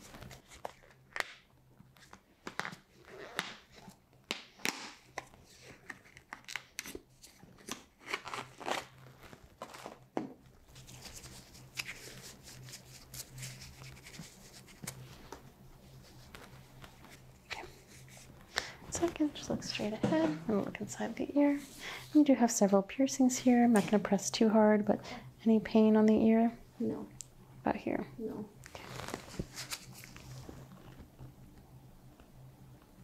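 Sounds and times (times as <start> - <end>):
disinfectant wipe rustling: 10.7 - 22.2, 28.7 - 31.0.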